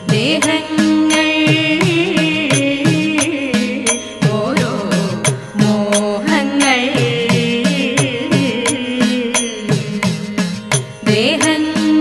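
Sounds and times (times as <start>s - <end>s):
person singing folk song: 0.0s - 12.0s
sharp percussive strokes: 0.0s - 12.0s.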